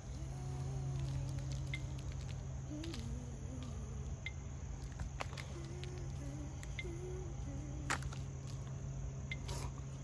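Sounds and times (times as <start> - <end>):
insect drone: 0.0 - 10.0.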